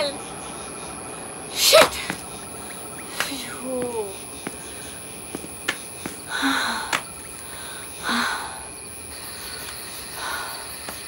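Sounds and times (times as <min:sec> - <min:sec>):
low steady background: 0:00.0 - 0:11.0.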